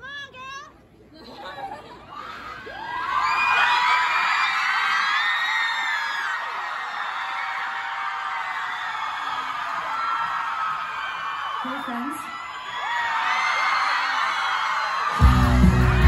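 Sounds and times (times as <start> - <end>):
crowd screaming and cheering: 2.1 - 16.0.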